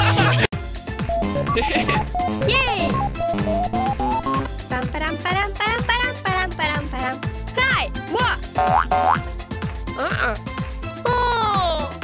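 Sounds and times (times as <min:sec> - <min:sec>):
cartoon background music: 0:00.0 - 0:12.0
wordless cartoon character vocalisations: 0:10.0 - 0:10.4.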